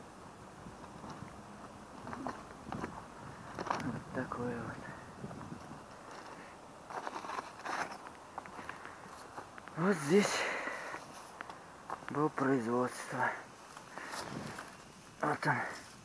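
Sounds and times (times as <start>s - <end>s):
small crackles: 0.8s - 4.4s, 5.3s - 16.0s
footsteps crunching on rubble: 0.9s - 4.5s, 5.3s - 15.0s
person's voice: 3.8s - 5.0s, 9.7s - 10.7s, 12.1s - 13.5s, 15.2s - 15.9s.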